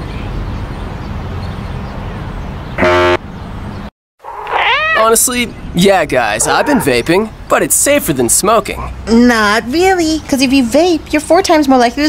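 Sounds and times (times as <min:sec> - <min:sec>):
loud horn honk: 0:02.8 - 0:03.2.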